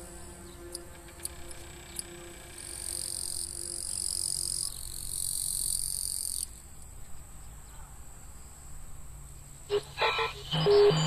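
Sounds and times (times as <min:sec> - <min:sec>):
insects shrilling: 0:00.0 - 0:06.6.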